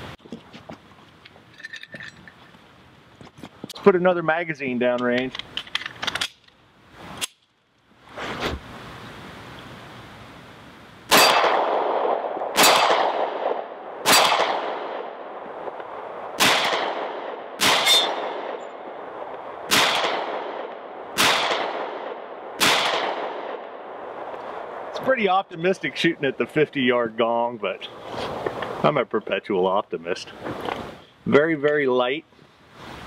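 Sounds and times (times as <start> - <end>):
metallic clacks of pistol: 5.0 - 6.6
pistol shots with echoing ring: 11.1 - 15.2, 16.4 - 18.9, 19.7 - 24.0.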